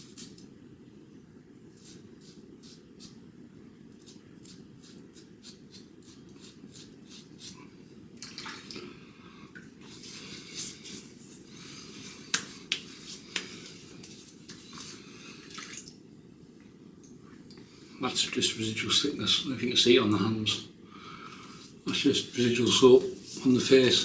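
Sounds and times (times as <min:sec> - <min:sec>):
razor scraping stubble: 0:04.0 - 0:07.6
hands splashing water on face: 0:08.2 - 0:08.8, 0:15.4 - 0:15.9.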